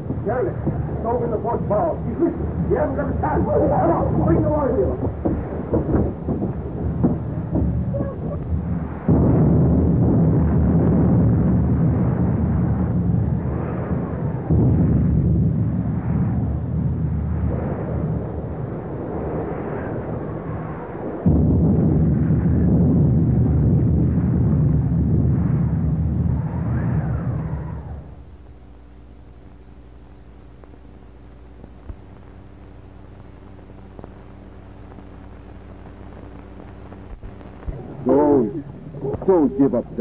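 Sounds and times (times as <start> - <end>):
roaring wind and heavy sea: 0.0 - 28.2
howling wind: 0.0 - 30.4, 31.8 - 40.0.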